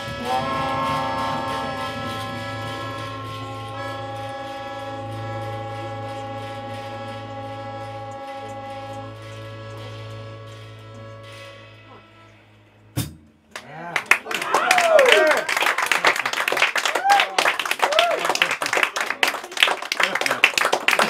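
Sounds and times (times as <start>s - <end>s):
jazz group sustained chord: 0.0s - 13.1s.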